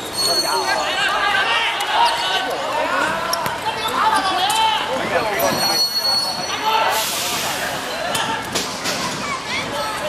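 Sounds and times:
players shouting: 0.1s - 8.6s.

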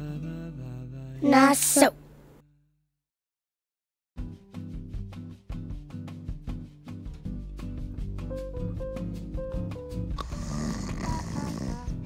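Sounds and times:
light background music: 4.2s - 12.0s
long rattly snore: 10.2s - 12.0s.

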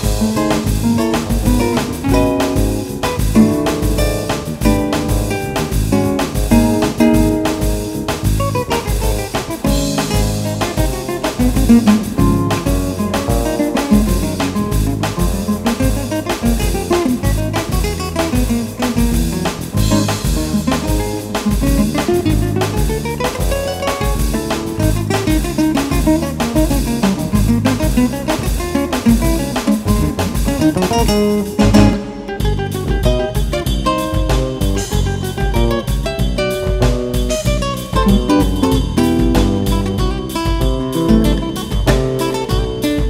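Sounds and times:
electric bass: 0.0s - 43.0s
nylon-string guitar playing: 0.0s - 43.0s
percussion beat: 0.0s - 43.0s.

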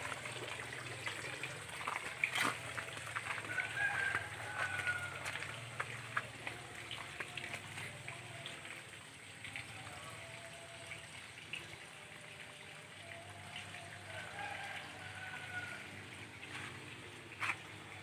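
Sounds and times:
water trickling and dripping: 0.0s - 18.0s.

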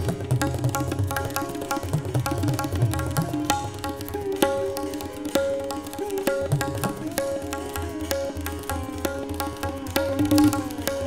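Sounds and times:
sitar notes: 0.0s - 11.0s
tabla strokes: 0.0s - 11.0s.

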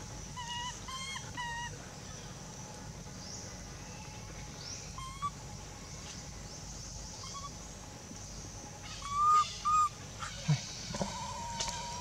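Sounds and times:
baby monkey high coo calls: 0.3s - 2.2s, 4.9s - 5.4s, 7.2s - 7.6s, 8.8s - 12.0s.

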